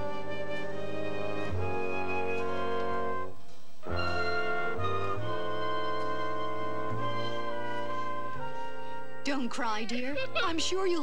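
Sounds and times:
orchestral score with brass: 0:00.0 - 0:11.0.

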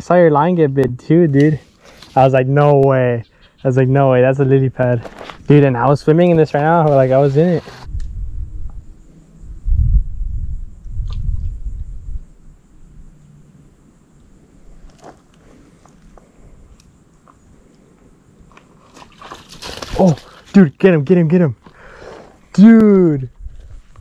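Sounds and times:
low rumbling on microphone: 0:07.8 - 0:13.1.

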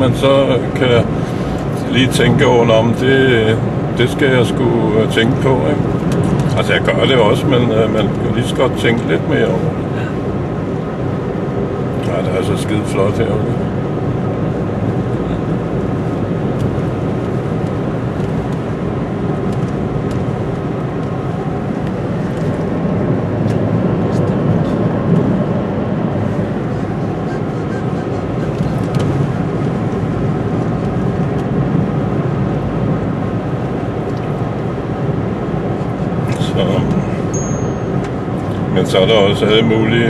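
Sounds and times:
car cabin road rumble: 0:00.0 - 0:40.0.

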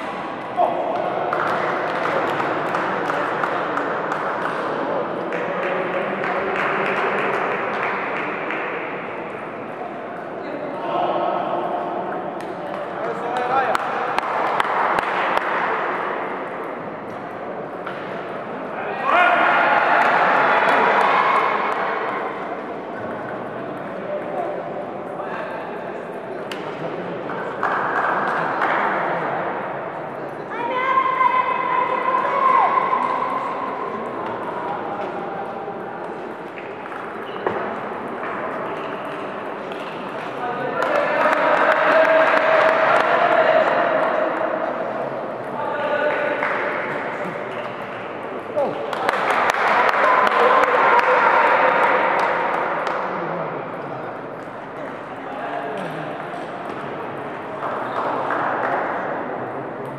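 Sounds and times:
people chattering and calling: 0:00.0 - 0:59.9.

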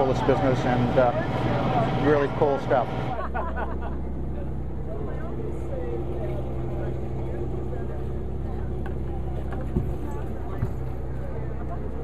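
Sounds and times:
boat engine humming: 0:00.0 - 0:12.0
faint voices: 0:04.0 - 0:12.0.

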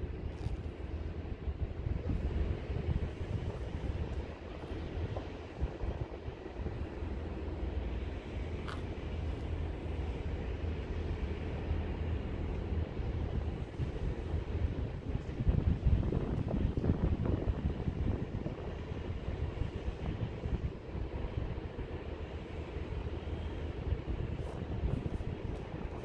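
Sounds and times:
electric train humming: 0:00.0 - 0:26.0
wind gusting on microphone: 0:00.0 - 0:26.0.

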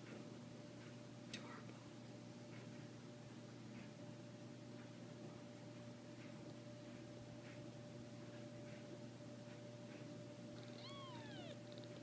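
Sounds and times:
kitten mewing: 0:10.6 - 0:11.8.

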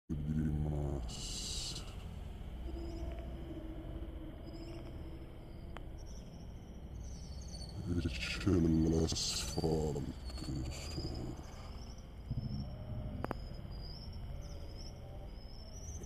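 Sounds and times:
person speaking: 0:00.1 - 0:01.9
click: 0:13.2 - 0:13.4.

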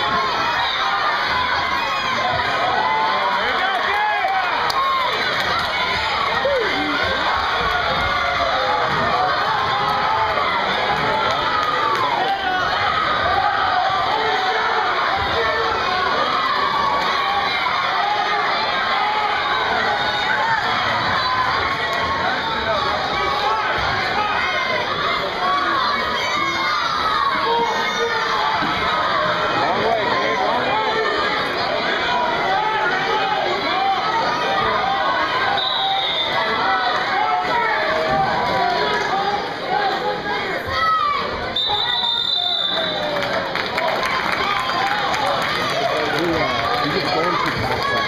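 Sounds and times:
spectators shouting and cheering: 0:00.0 - 0:48.0.

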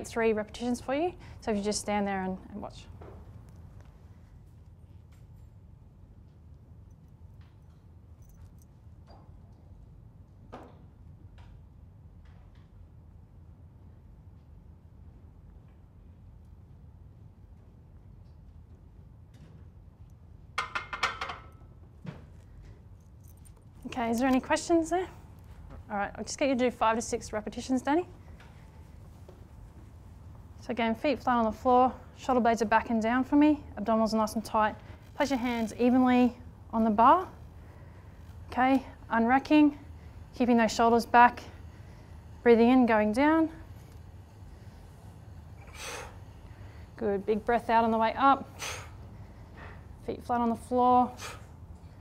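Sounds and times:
sharp breath out: 0:45.6 - 0:47.0, 0:48.5 - 0:49.7, 0:51.2 - 0:51.6.

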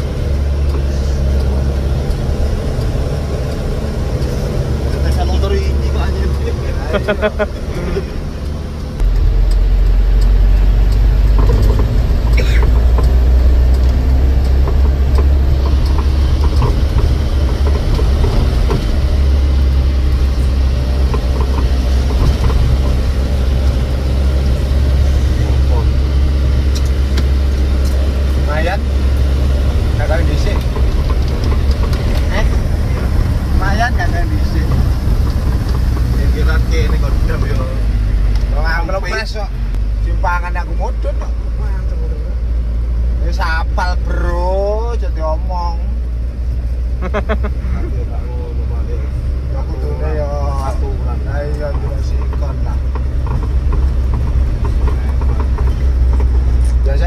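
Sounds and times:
bus engine and road noise: 0:00.0 - 0:57.0
people talking: 0:04.9 - 0:08.2, 0:25.3 - 0:26.0, 0:28.4 - 0:28.8, 0:30.0 - 0:30.7, 0:32.2 - 0:34.8, 0:36.1 - 0:37.8, 0:38.5 - 0:42.3, 0:43.2 - 0:45.8, 0:47.0 - 0:52.8.

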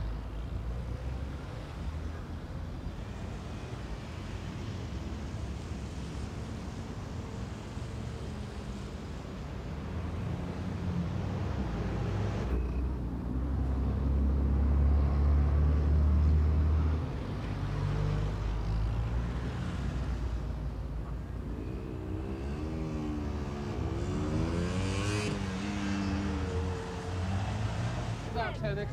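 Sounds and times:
vehicles driving past: 0:00.0 - 0:28.9.

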